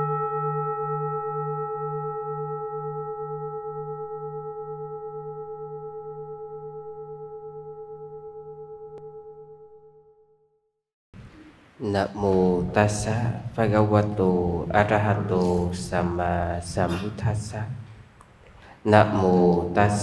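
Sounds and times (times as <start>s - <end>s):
singing bowl ringing: 0.0s - 10.2s.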